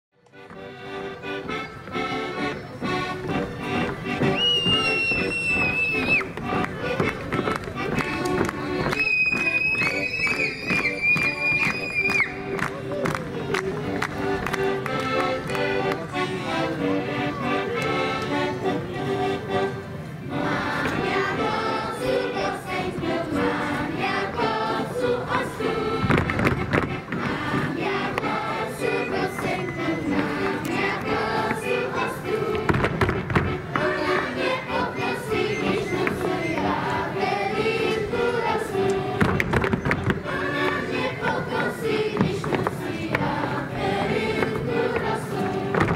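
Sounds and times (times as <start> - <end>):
folk dance music with accordion: 0.2 - 45.9
children singing in chorus: 20.2 - 39.3, 40.0 - 45.9
shoes stepping on stage floor: 44.3 - 45.9.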